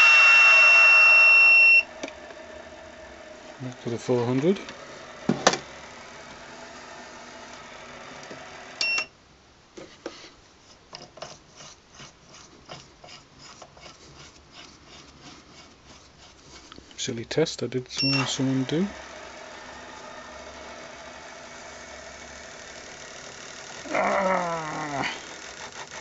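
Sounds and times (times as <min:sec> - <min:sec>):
spindle motor humming: 0:00.0 - 0:09.1, 0:18.0 - 0:26.0.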